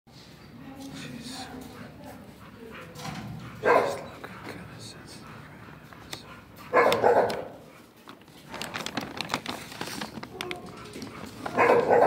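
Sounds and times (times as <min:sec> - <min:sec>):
dog barking: 0:03.6 - 0:04.1, 0:06.6 - 0:07.7, 0:10.8 - 0:12.0.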